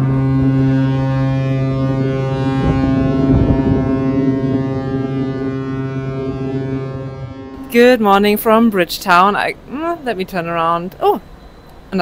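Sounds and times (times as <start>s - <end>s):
wind rumbling on microphone: 0.0s - 8.1s
ship's horn long blast: 0.0s - 8.6s.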